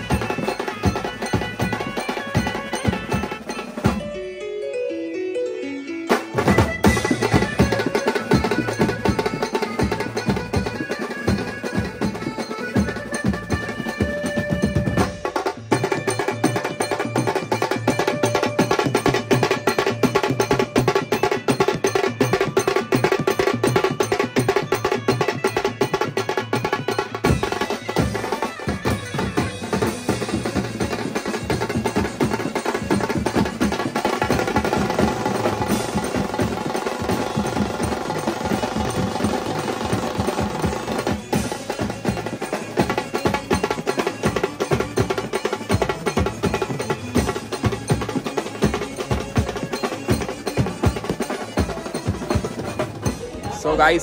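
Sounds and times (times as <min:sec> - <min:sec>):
drum troupe playing fast rhythm: 0:00.0 - 0:04.2, 0:06.1 - 0:54.0.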